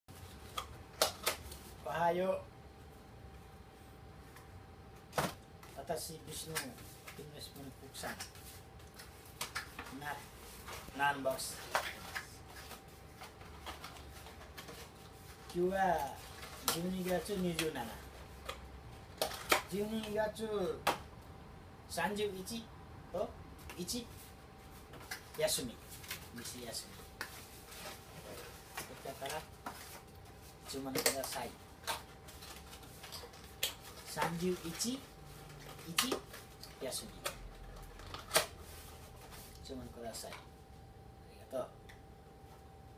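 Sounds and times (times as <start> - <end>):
low room hum: 0.1 - 42.9.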